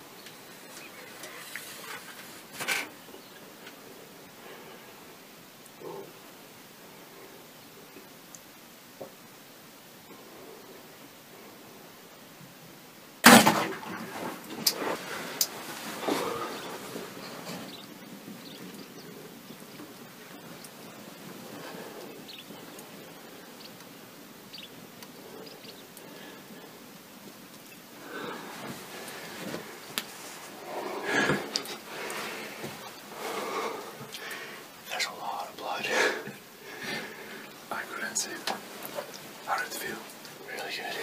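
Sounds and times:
rustling: 0.0 - 3.8, 13.2 - 41.0.

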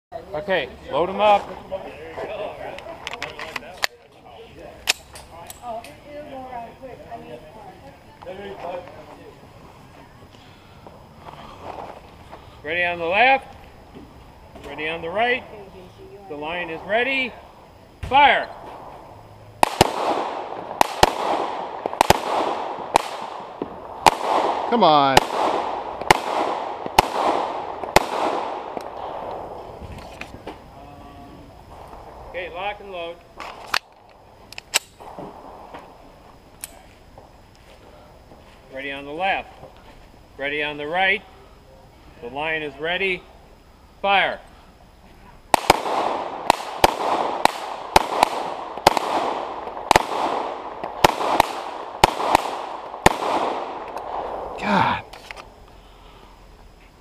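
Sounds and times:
murmured voices: 0.1 - 19.5, 29.1 - 33.4, 54.5 - 55.2
metallic clicks of handguns: 4.8 - 6.0, 33.4 - 35.0, 36.6 - 36.8
pistol shots: 19.6 - 29.5, 45.5 - 54.6
gunshot echo: 19.6 - 29.6, 45.5 - 54.6.

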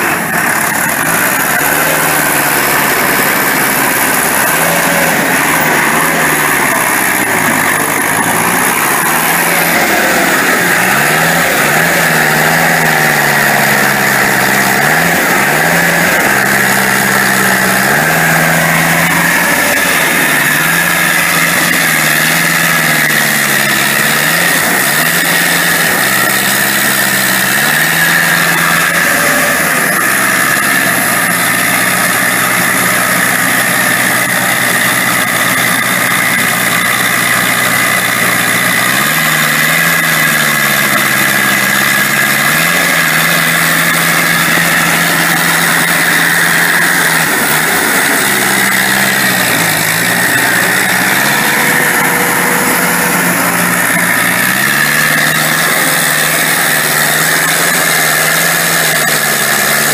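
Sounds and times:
harvester engine running: 0.0 - 59.9.

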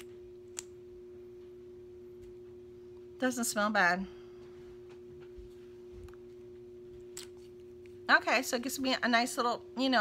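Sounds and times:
faint two-tone hum: 0.0 - 10.0.

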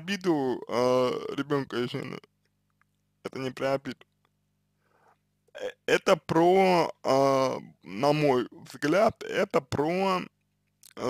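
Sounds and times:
man speaking: 0.0 - 2.3, 3.3 - 4.0, 5.6 - 10.3.

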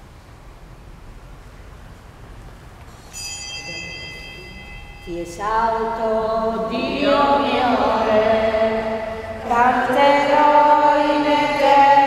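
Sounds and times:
small bell ringing: 3.0 - 5.4.

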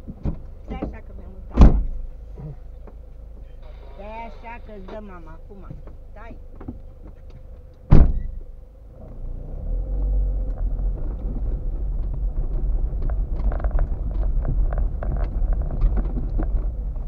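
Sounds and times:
car driving on gravel: 0.0 - 17.0
loud thump: 0.2 - 2.1, 7.9 - 8.4
stones crackling under tyres: 9.8 - 17.0.

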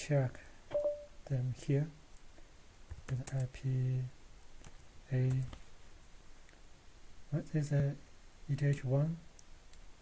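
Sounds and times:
person speaking: 5.1 - 5.6, 7.3 - 9.3.

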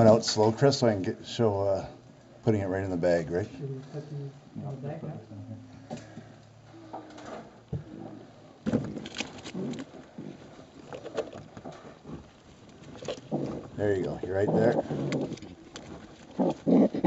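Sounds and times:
baby raccoons crying: 14.4 - 15.4, 16.4 - 17.0.

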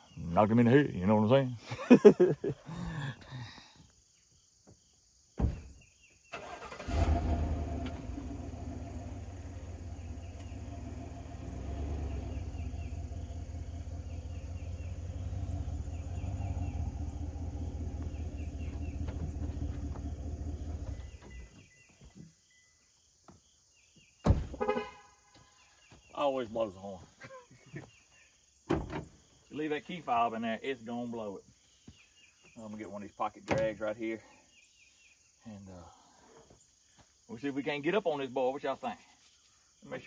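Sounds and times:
truck engine starting and idling: 6.3 - 21.2.

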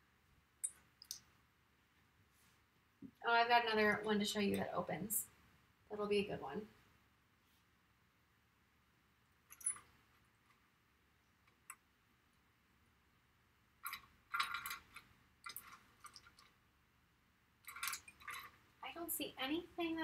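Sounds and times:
small hard objects clicking: 13.8 - 16.5, 17.6 - 18.6.

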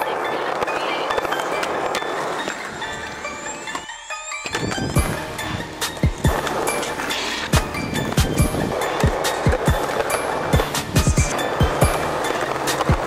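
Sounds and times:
skateboard wheels on rough pavement: 0.0 - 13.0.

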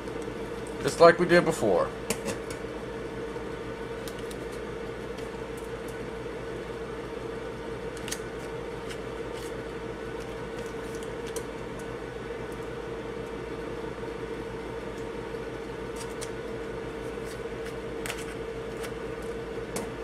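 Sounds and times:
steady background hum: 0.0 - 20.0.

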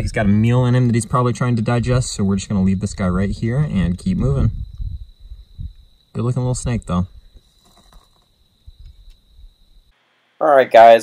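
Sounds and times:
low microphone rumble: 0.0 - 7.4
cricket calling: 0.0 - 10.4.

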